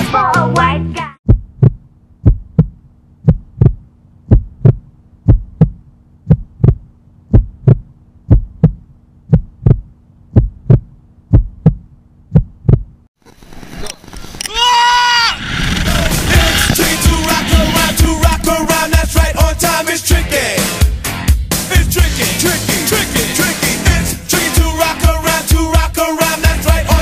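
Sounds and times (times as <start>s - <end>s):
heartbeat thumps: 1.2s - 13.0s, 15.8s - 19.8s
wind rushing: 14.2s - 19.8s
man yelling: 14.4s - 15.4s.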